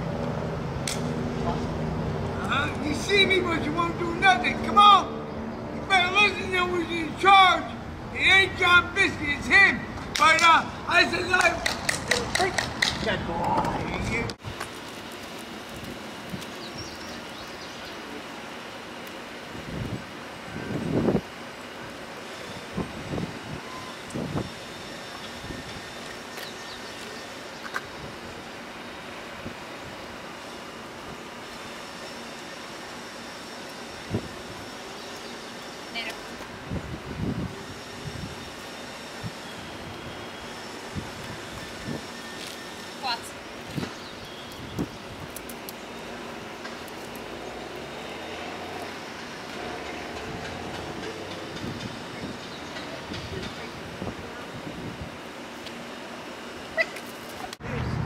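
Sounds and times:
outdoor background noise: 0:00.0 - 0:58.0.

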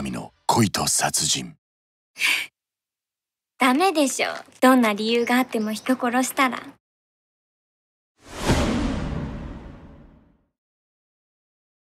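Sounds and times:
whoosh into a hit: 0:08.2 - 0:10.4.

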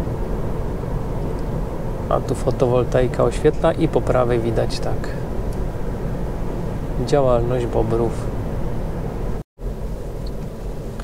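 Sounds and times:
road and tyre rumble inside car: 0:00.0 - 0:11.0.

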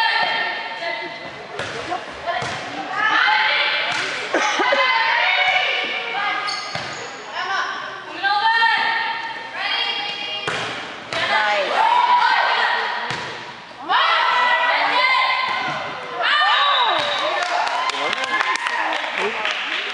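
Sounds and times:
players and crowd shouting: 0:13.8 - 0:17.0.

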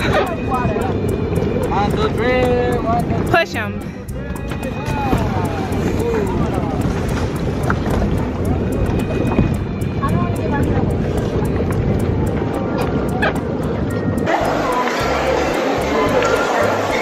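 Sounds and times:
music: 0:00.0 - 0:17.0
people's voices: 0:00.0 - 0:17.0
wind noise on microphone: 0:00.0 - 0:17.0.

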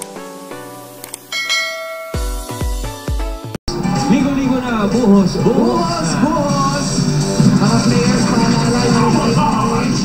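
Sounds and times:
background music with deep bass: 0:00.0 - 0:10.0
bell chime: 0:01.3 - 0:02.7.

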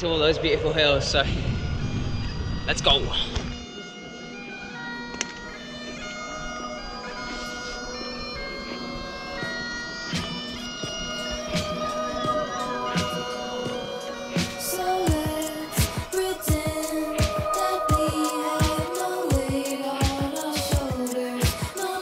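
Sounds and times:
low rumbling noise: 0:00.0 - 0:03.4
bagpipes playing over a drone: 0:03.3 - 0:22.0.

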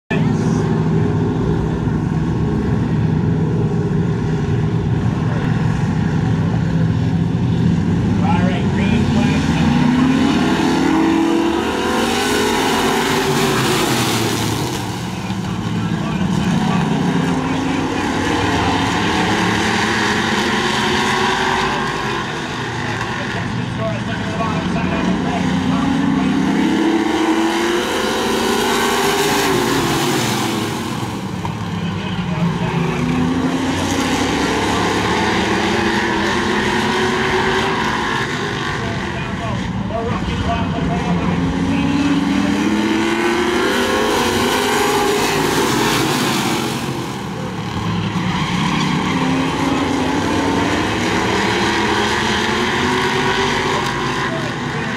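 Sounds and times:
race car engines: 0:00.1 - 0:54.9.

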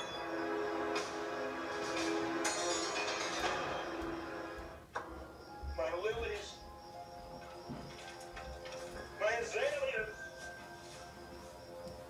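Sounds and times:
eerie background music: 0:00.0 - 0:12.0.

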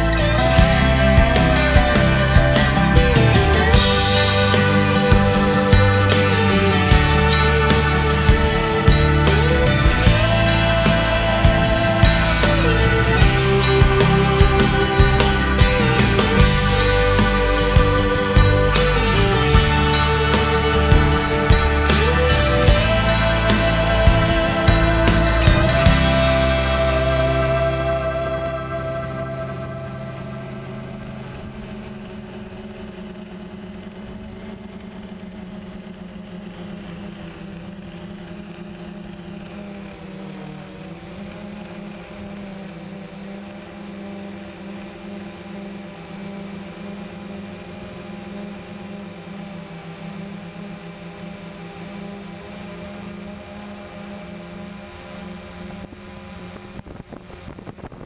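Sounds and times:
drone propellers humming: 0:00.0 - 0:58.0.

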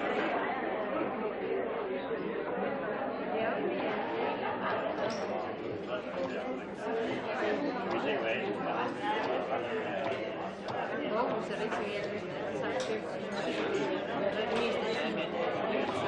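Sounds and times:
babble of party conversation: 0:00.0 - 0:16.0.

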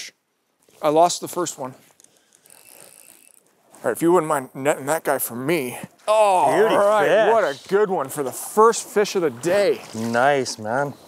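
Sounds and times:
fishing reel ratchet clicking: 0:02.0 - 0:03.5.

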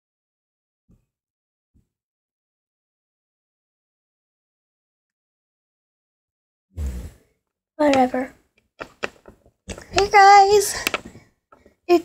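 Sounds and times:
person speaking: 0:07.8 - 0:11.2.

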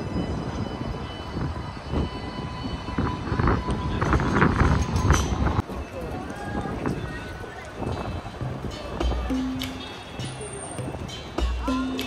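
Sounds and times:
low traffic rumble: 0:00.0 - 0:12.0
passers-by talking: 0:03.8 - 0:12.0.

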